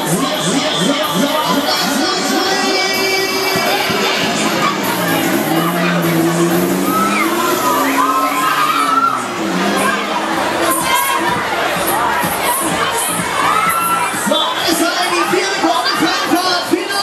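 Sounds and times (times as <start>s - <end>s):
riders screaming and shouting: 0.0s - 17.0s.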